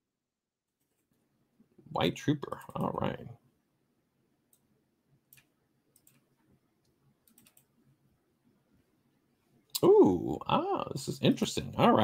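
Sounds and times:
computer mouse clicks: 0:05.3 - 0:07.7.

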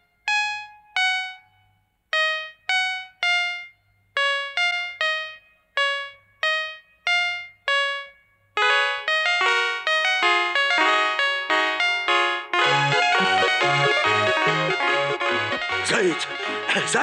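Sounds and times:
bright plucked tune: 0:02.1 - 0:17.0.

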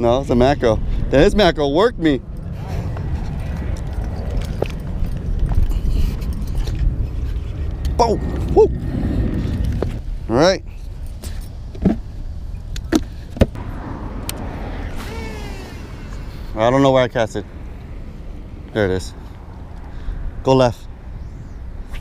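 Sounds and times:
road traffic rumble: 0:00.0 - 0:22.0
short vocal sounds: 0:14.8 - 0:16.6.

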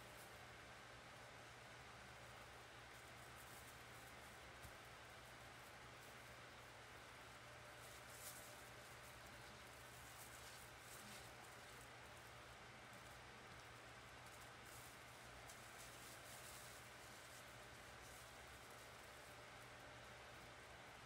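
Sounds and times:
faint steady hiss: 0:00.0 - 0:21.0.

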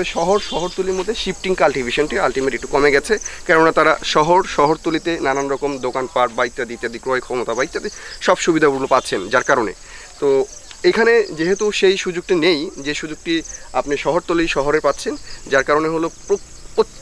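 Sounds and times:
high-pitched insect drone: 0:00.0 - 0:17.0
man speaking: 0:00.0 - 0:17.0.

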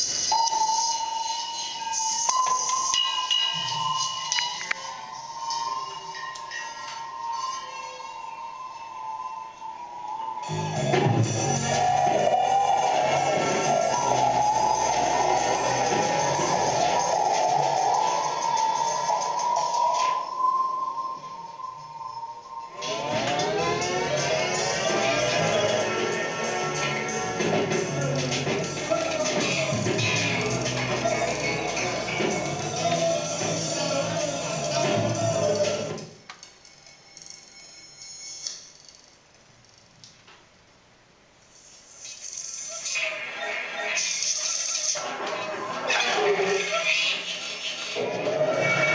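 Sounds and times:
gliding tones: 0:00.0 - 0:36.0
steady high tone: 0:00.0 - 0:38.9
improvised electroacoustic music: 0:10.4 - 0:21.8, 0:22.7 - 0:36.2.

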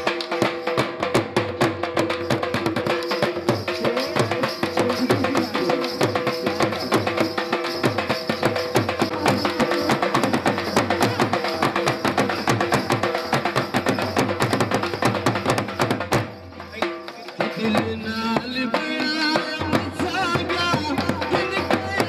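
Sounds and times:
fast dhol drumming: 0:00.0 - 0:22.0.

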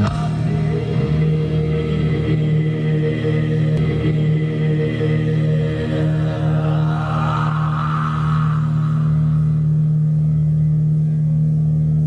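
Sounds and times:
electric guitars holding low chord: 0:00.0 - 0:12.0.

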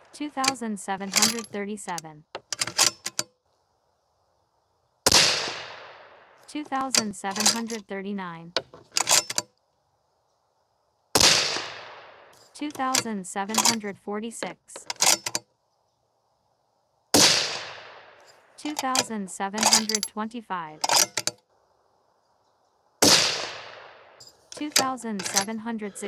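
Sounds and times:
rifle shot with echo: 0:05.1 - 0:06.4, 0:11.2 - 0:12.3, 0:17.2 - 0:18.2, 0:23.0 - 0:24.2.

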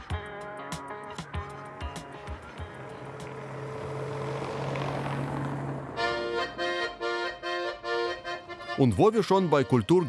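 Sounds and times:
plucked guitar music: 0:00.0 - 0:04.4, 0:06.0 - 0:10.0
car engine hum and tyre noise: 0:00.0 - 0:08.7.

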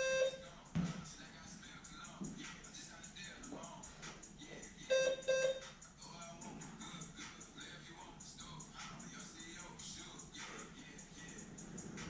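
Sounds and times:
short electronic beeps: 0:00.0 - 0:00.4, 0:04.9 - 0:05.6
background music: 0:00.0 - 0:12.0.

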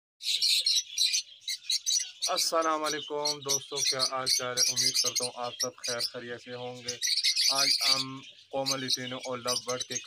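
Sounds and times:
lovebirds chirping: 0:00.2 - 0:10.0.

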